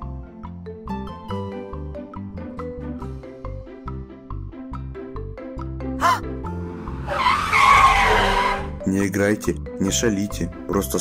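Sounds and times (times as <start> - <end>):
car tyres screeching: 6.8 - 8.8.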